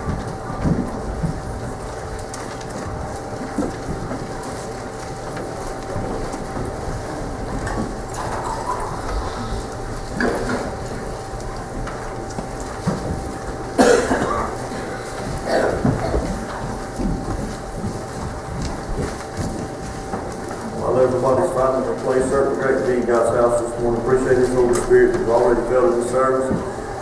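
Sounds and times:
congregation rustling and shuffling: 0.0 - 27.0
steady hum: 0.0 - 27.0.

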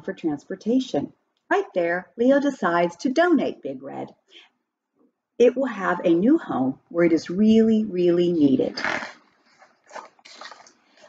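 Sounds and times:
paper page rustle: 8.9 - 11.0.

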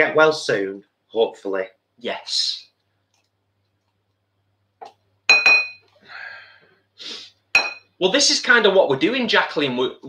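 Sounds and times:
utensil clinking against bowl: 5.3 - 5.8.

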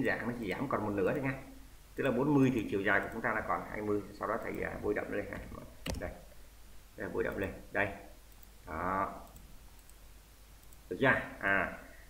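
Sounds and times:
faint computer mouse clicks: 8.3 - 8.6, 9.2 - 10.0, 10.6 - 10.9.

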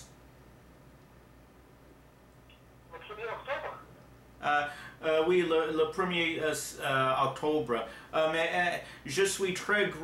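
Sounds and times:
voice over telephone: 2.9 - 3.8.

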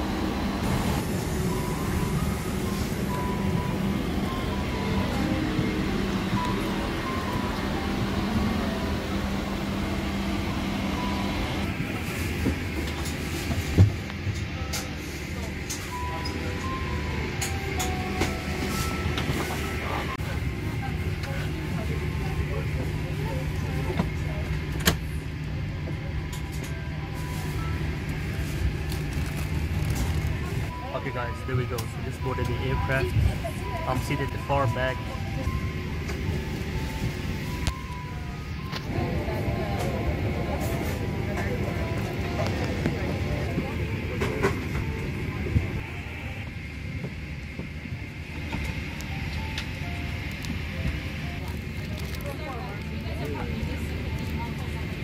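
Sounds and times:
aircraft ventilation hum: 0.0 - 55.0
passengers' voices: 0.0 - 55.0.

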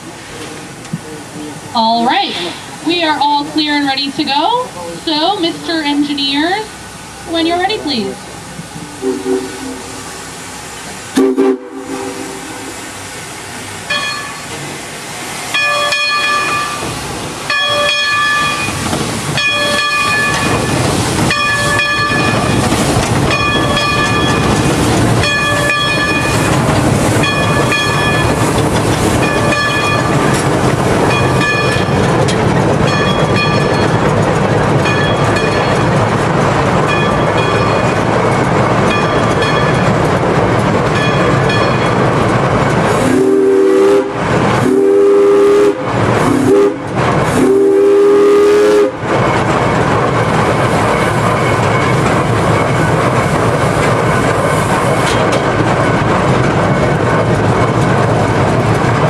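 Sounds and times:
steam locomotive hiss and running: 0.0 - 59.0
steam whistle blasts: 9.0 - 10.0, 11.2 - 12.7, 43.0 - 46.8, 47.4 - 49.0.

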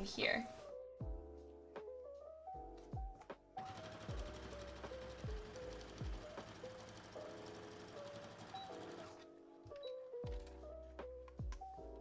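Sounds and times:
lo-fi music with kick drum: 0.7 - 4.3, 5.2 - 6.4, 10.2 - 12.0
sewing machine stitching: 3.6 - 9.3.

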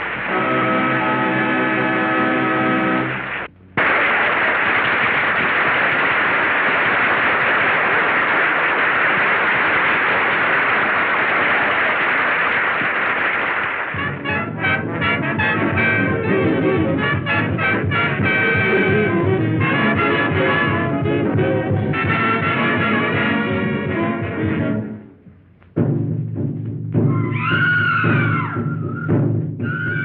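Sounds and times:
dense rush of noise: 0.0 - 19.6
swing big band with brass: 13.9 - 24.9.

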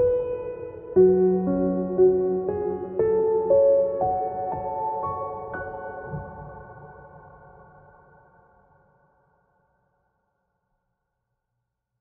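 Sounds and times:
piano notes ringing: 0.0 - 8.1.

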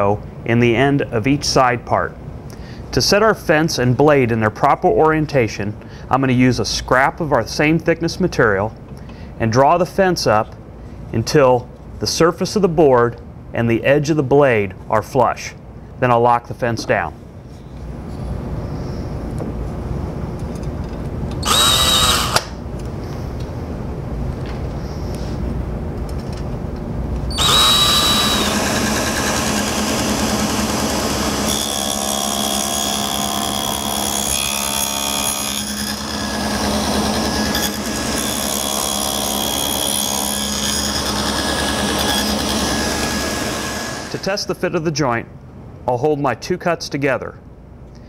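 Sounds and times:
table saw cutting wood: 21.4 - 22.5, 27.3 - 44.3.

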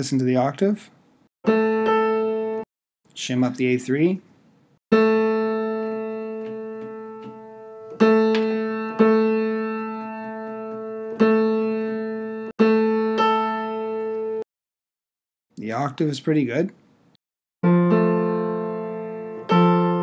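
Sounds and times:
piano octave ringing: 1.5 - 2.7, 4.9 - 14.4, 17.6 - 20.0.

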